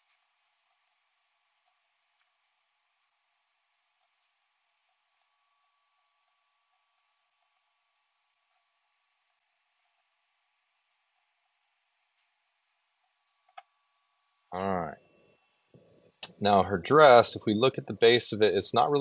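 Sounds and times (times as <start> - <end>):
faint steady hiss: 0.0 - 19.0.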